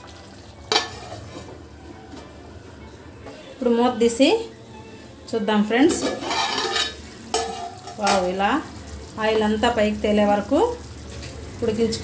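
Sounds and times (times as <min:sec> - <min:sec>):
curry sizzling and bubbling in pot: 0:00.0 - 0:03.4, 0:05.7 - 0:12.0
metal lid clinking: 0:05.9 - 0:08.2.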